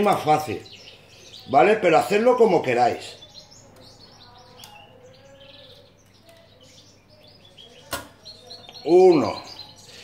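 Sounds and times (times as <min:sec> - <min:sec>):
songbirds chirping: 0:00.0 - 0:10.0.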